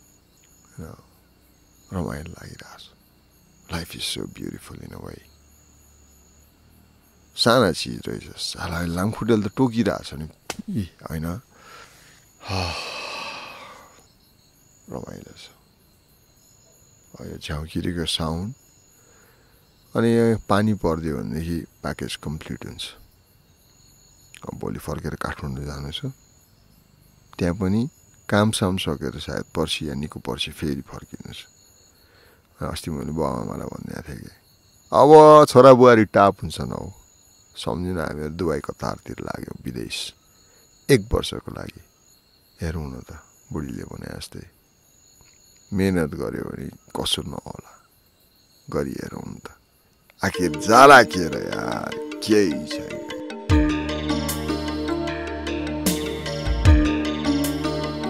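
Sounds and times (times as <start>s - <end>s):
faint high-pitched steady tone: 0.0s - 53.6s
man talking: 0.7s - 1.1s, 1.9s - 2.9s, 3.7s - 5.3s, 7.4s - 11.4s, 14.9s - 15.6s, 17.2s - 18.6s, 20.0s - 23.0s, 24.4s - 26.1s, 27.4s - 31.4s, 32.6s - 34.3s, 35.0s - 37.0s, 37.6s - 40.2s, 40.9s - 41.8s, 42.6s - 44.5s, 45.7s - 47.8s, 48.7s - 49.6s, 50.2s - 53.0s
faint high-pitched tone: 50.2s - 53.6s.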